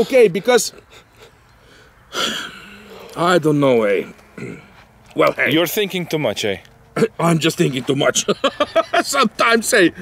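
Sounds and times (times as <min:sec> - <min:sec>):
man sighing: 0:01.7 - 0:03.2.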